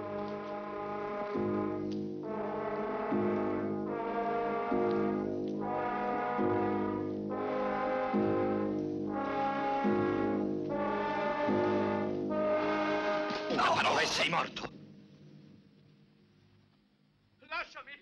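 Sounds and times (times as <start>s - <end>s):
brass-led orchestral music: 0.0s - 14.3s.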